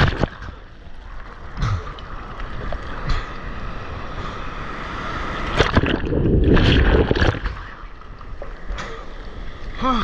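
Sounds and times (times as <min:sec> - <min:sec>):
small water splash: 0:05.3 - 0:09.0.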